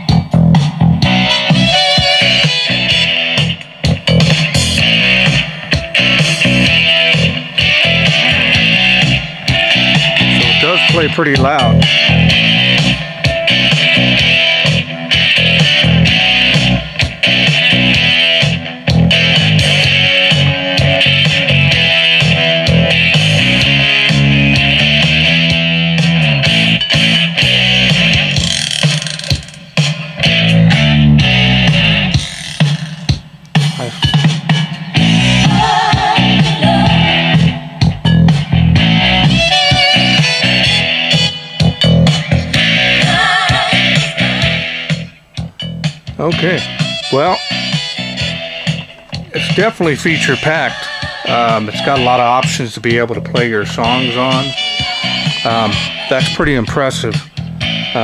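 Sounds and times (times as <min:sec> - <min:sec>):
instrumental guitar music: 0:00.0 - 0:58.0.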